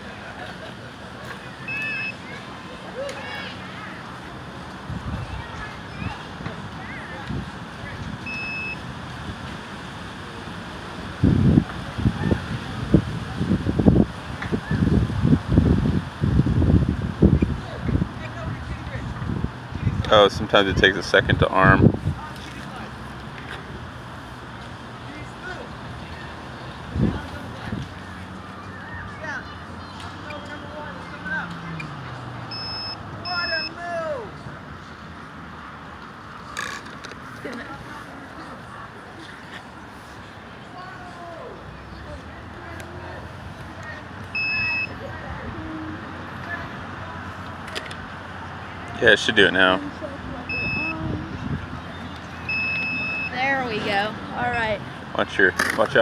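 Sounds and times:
outdoor background noise: 0.0s - 56.0s
short electronic beeps: 1.6s - 2.2s, 8.3s - 8.8s, 32.5s - 33.8s, 44.4s - 45.0s, 50.5s - 51.0s, 52.4s - 53.4s.

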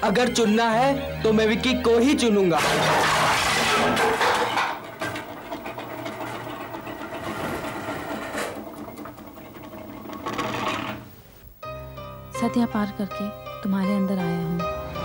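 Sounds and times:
dishes crashing: 2.5s - 11.2s
continuous rattling: 2.6s - 11.2s.

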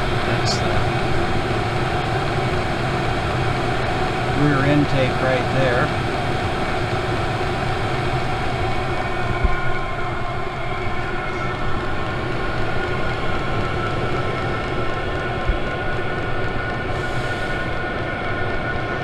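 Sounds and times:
heater burner and fan roaring: 0.0s - 19.0s.

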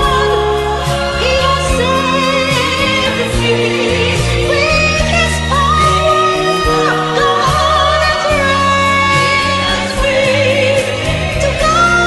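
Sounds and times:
instrumental backing with bass: 0.0s - 12.0s.

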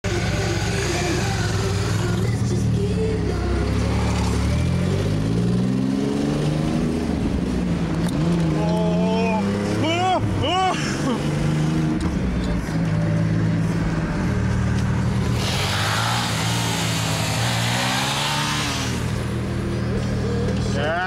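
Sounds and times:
car and motorcycle engines accelerating: 0.1s - 21.0s
wind and road noise: 0.1s - 21.0s.

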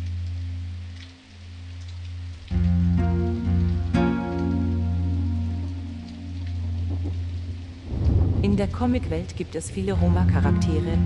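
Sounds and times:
rain falling: 0.0s - 11.0s
soft background music: 0.0s - 11.0s
thunder rumbling: 6.8s - 11.0s.

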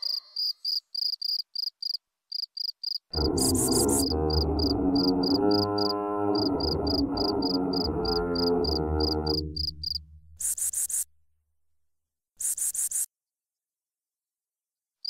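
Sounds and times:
electronic drone: 3.2s - 10.4s
low rumble: 3.2s - 10.4s.

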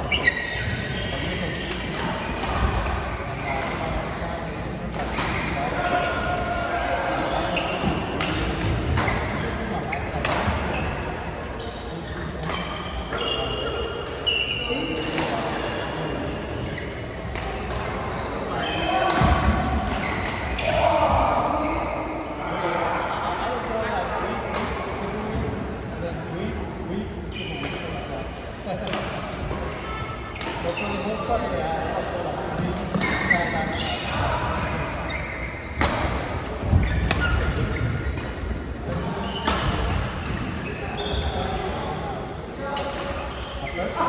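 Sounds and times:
players' voices: 0.0s - 44.0s.

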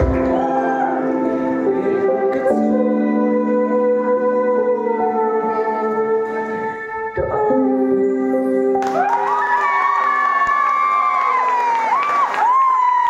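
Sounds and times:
audience cheering and applause: 0.0s - 1.2s, 8.8s - 13.0s
high whoops: 0.0s - 1.2s, 8.8s - 13.0s.

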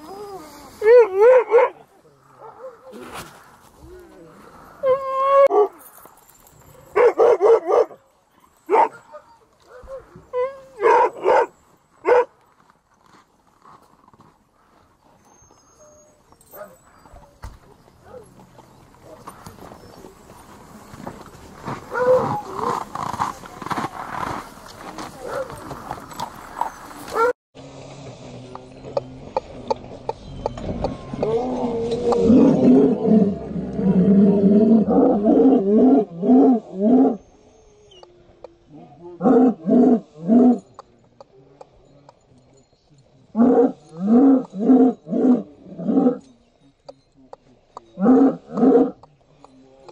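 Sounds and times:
sled dogs barking and yelping: 0.0s - 12.6s, 14.6s - 27.4s, 29.9s - 41.0s, 43.3s - 46.4s.

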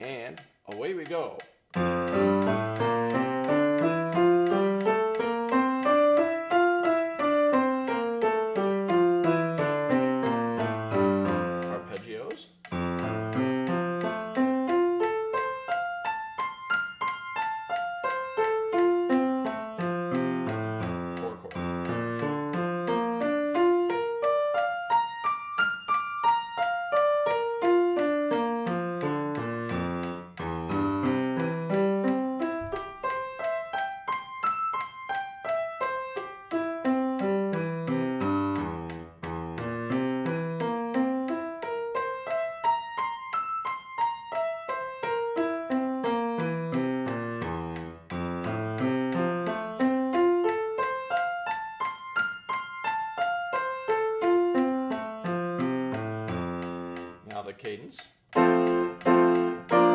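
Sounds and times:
grand piano scales and arpeggios: 1.7s - 57.3s, 58.3s - 59.9s.

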